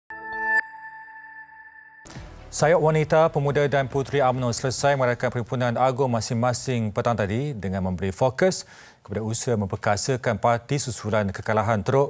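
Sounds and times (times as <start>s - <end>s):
high tone ringing: 0.1s - 2.1s.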